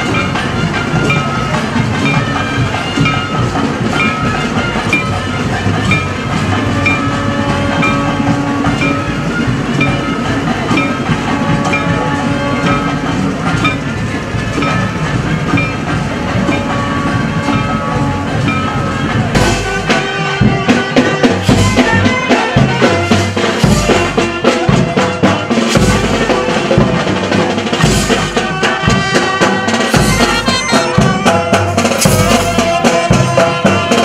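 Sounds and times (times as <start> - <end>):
reed pipe long notes: 0.0 - 23.1
drum and cymbal beat: 0.0 - 34.0.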